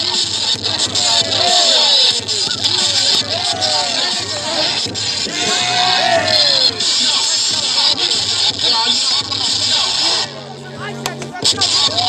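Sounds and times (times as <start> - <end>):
bass-heavy hip-hop music: 0.0 - 12.0
onlookers shouting: 0.7 - 2.2, 2.8 - 7.2.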